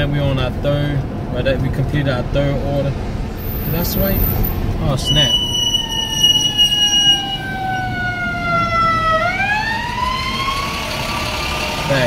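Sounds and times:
low road and engine rumble: 0:00.0 - 0:12.0
emergency siren wailing: 0:05.0 - 0:12.0.

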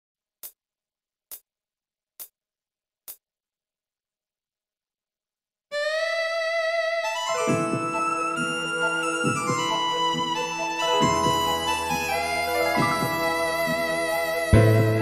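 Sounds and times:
keyboard-led band accompaniment: 0:07.2 - 0:15.0.

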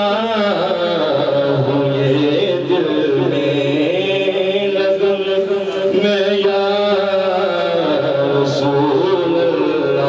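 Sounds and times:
man singing into microphone: 0:00.0 - 0:10.0.

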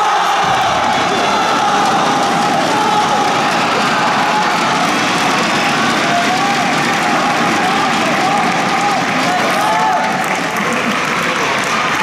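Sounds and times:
crowd calling and cheering: 0:00.0 - 0:12.0
clapping: 0:00.4 - 0:12.0.

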